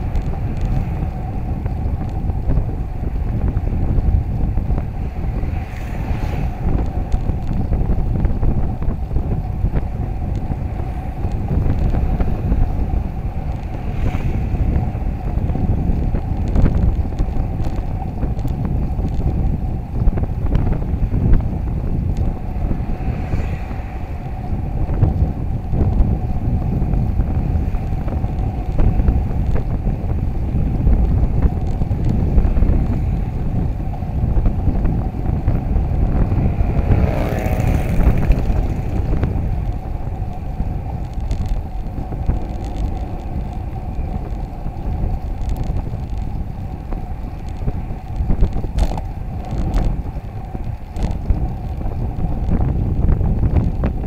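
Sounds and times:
road noise: 0:00.0 - 0:54.0
wind buffeting microphone: 0:00.0 - 0:54.0
motor vehicle passing: 0:21.9 - 0:25.3, 0:34.7 - 0:47.4.

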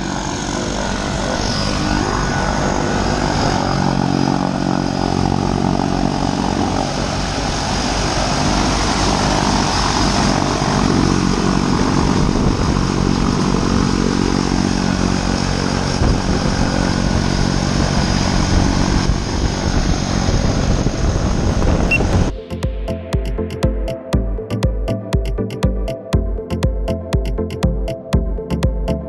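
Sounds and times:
propeller airplane engines droning: 0:00.0 - 0:29.0.

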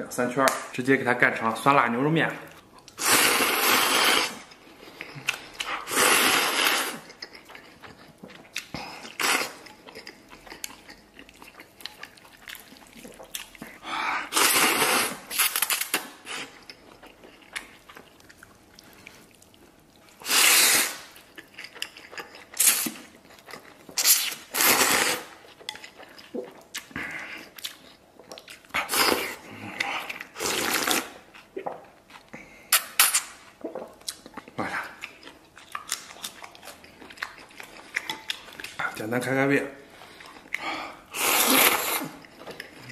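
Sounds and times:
chewing: 0:02.5 - 0:20.4, 0:21.0 - 0:39.0, 0:39.9 - 0:42.9
noodles slurped: 0:02.9 - 0:08.0, 0:08.6 - 0:16.6, 0:20.1 - 0:23.1, 0:23.9 - 0:25.4, 0:28.8 - 0:31.2, 0:40.5 - 0:42.9.

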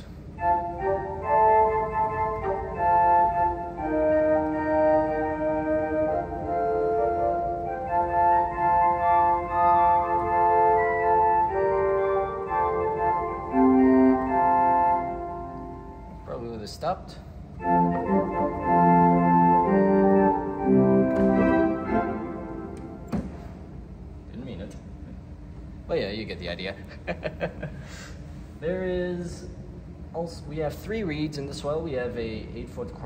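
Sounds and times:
pipe organ held chords: 0:00.0 - 0:25.9.

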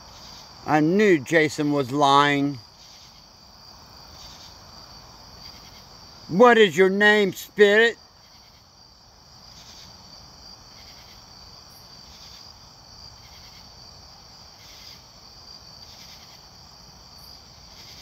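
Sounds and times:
insect chirps: 0:00.0 - 0:18.0
insects trilling: 0:00.0 - 0:18.0.

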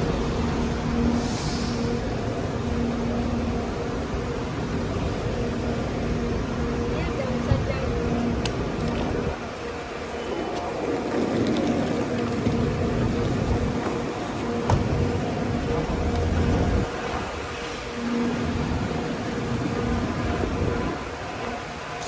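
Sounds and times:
bus engine idling: 0:00.0 - 0:22.0.

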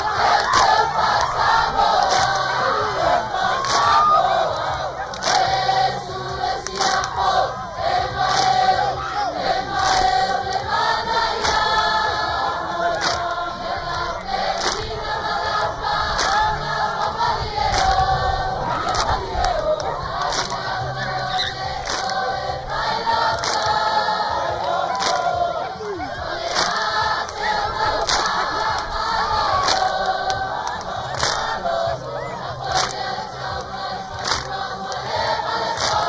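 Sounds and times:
crowd shouts and whoops: 0:00.0 - 0:05.5, 0:08.8 - 0:09.5, 0:18.6 - 0:22.1, 0:24.3 - 0:26.9, 0:28.0 - 0:30.8, 0:31.9 - 0:32.9
group singing over a beat: 0:00.0 - 0:36.0.

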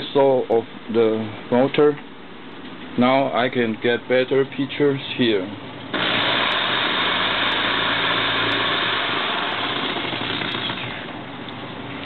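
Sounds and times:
power tool whirring: 0:05.9 - 0:11.2.

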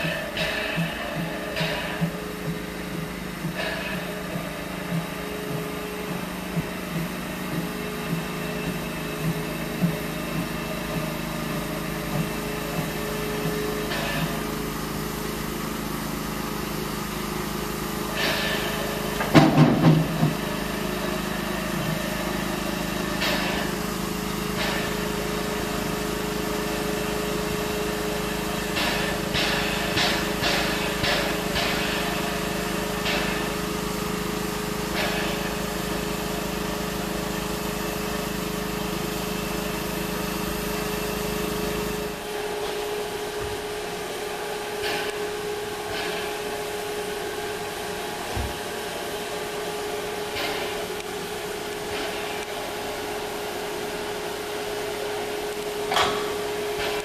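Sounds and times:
snowplough train running: 0:00.0 - 0:57.0.

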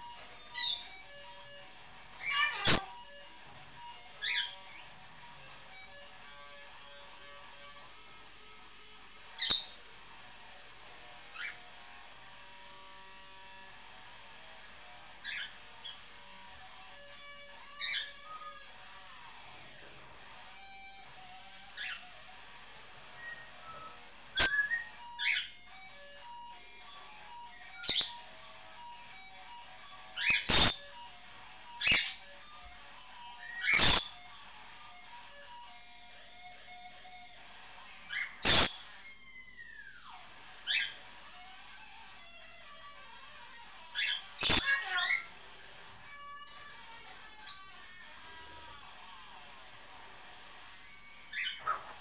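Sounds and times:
bird chirping and squawking: 0:00.1 - 0:07.8, 0:09.3 - 0:09.8, 0:11.2 - 0:13.6, 0:15.1 - 0:19.9, 0:20.6 - 0:29.2, 0:30.0 - 0:31.1, 0:31.7 - 0:32.4, 0:33.2 - 0:34.3, 0:37.8 - 0:42.1, 0:42.9 - 0:52.0.

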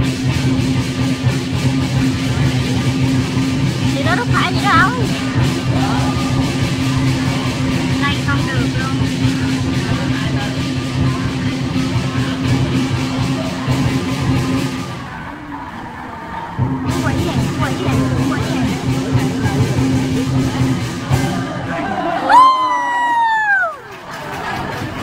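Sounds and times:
drum and cymbals beating: 0:00.0 - 0:15.1, 0:16.6 - 0:23.7
crowd chatter: 0:00.0 - 0:25.0.

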